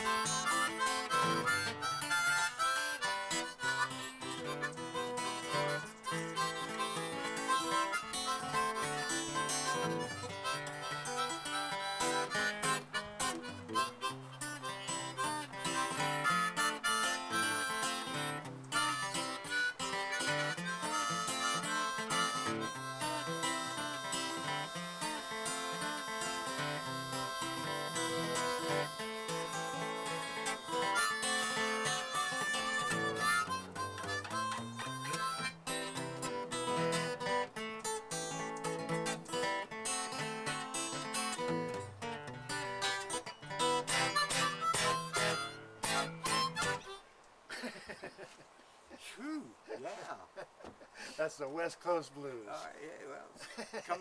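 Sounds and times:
plucked acoustic guitar: 0.0 - 47.0
harmonica: 0.0 - 47.7.

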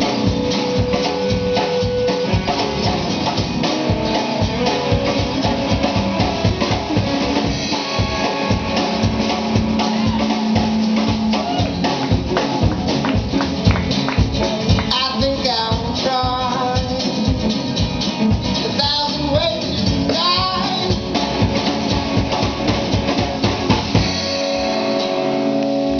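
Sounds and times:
live country-rock band playing: 0.0 - 25.9.

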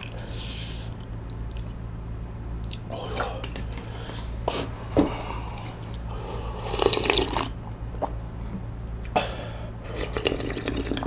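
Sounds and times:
wet slurping and smacking: 0.9 - 1.8, 6.7 - 8.2, 9.9 - 11.0
wet chewing and mouth sounds: 0.9 - 3.7.

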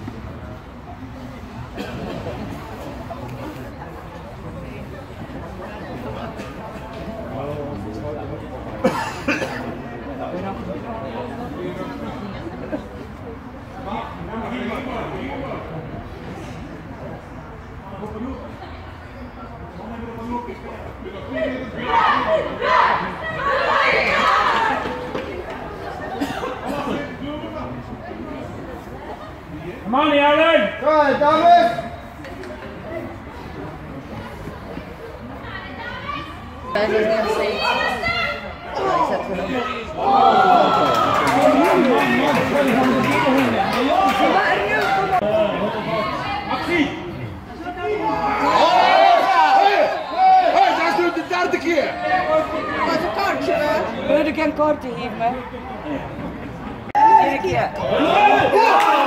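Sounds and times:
indistinct chatter: 0.0 - 59.0
team shouting together: 21.8 - 24.8, 47.9 - 53.8, 57.0 - 59.0
group cheering: 40.0 - 45.2, 48.0 - 51.3, 56.9 - 59.0.

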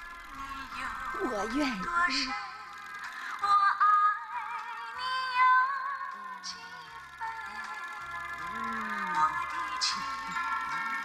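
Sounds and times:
waltz song on a record player: 0.0 - 11.0.

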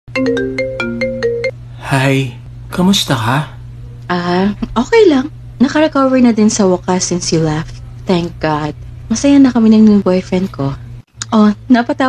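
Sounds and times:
mobile phone ringtone: 0.1 - 1.6.

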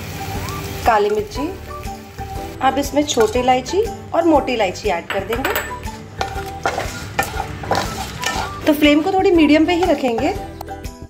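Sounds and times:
oil sizzling: 0.0 - 10.6
spatula scraping pan: 6.2 - 10.4.

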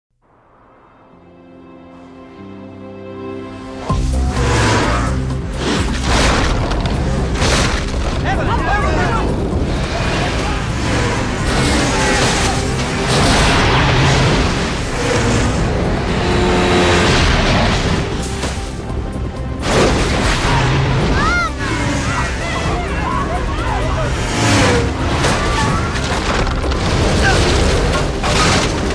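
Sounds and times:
dramatic music: 0.7 - 28.9
avalanche rushing rumble: 3.9 - 28.9
human cries: 21.2 - 24.1.

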